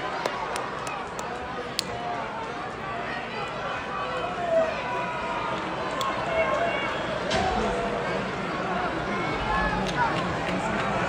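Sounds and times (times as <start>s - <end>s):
arena crowd voices talking: 0.0s - 11.0s.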